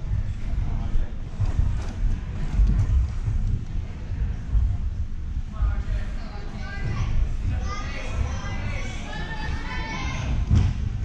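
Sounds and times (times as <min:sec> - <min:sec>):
steady low rumble: 0:00.0 - 0:11.0
crowd chattering and calling out: 0:03.9 - 0:11.0.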